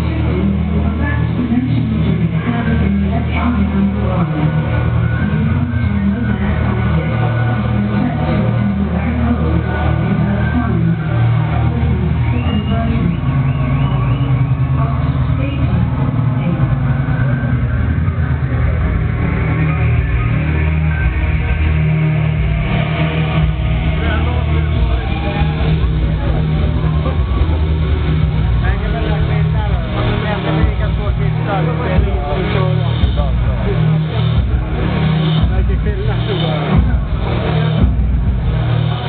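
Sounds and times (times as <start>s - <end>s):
electro music over club speakers: 0.0s - 39.0s
heavy pulsing bass line: 0.0s - 39.0s
voices: 0.0s - 39.0s.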